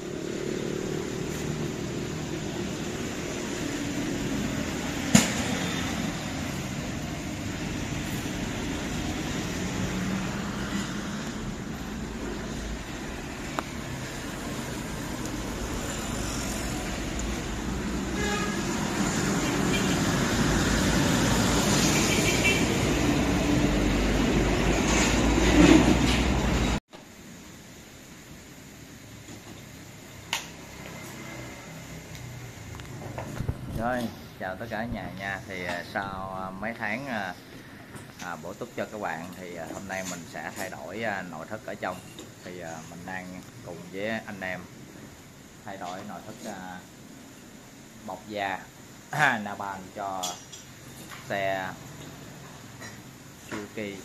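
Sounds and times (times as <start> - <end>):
motorbikes and cars passing: 0.0 - 26.8, 30.1 - 38.2, 51.3 - 54.0.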